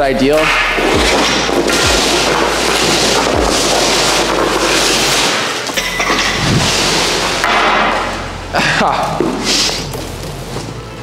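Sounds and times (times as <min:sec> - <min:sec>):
steady low hum: 0:00.0 - 0:11.0
skate blades scraping ice: 0:00.4 - 0:08.2, 0:09.2 - 0:10.8.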